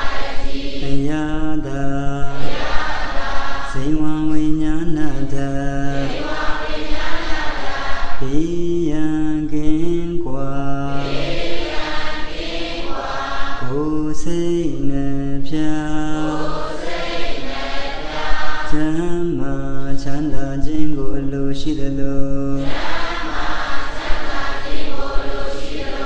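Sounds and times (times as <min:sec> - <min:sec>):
man chanting: 0:00.8 - 0:02.6, 0:03.7 - 0:06.4, 0:08.2 - 0:11.4, 0:13.6 - 0:16.6, 0:18.6 - 0:22.7.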